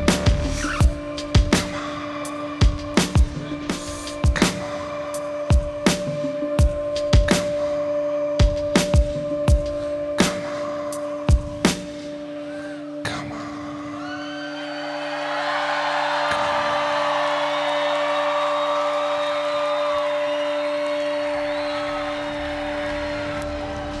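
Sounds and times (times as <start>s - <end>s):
crowd cheering and whistling: 0.0s - 9.5s, 13.7s - 24.0s.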